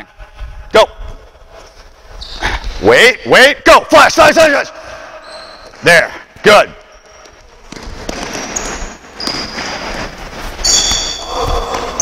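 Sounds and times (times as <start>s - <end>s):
sneakers squeaking on gym floor: 2.2s - 2.8s, 5.2s - 12.0s.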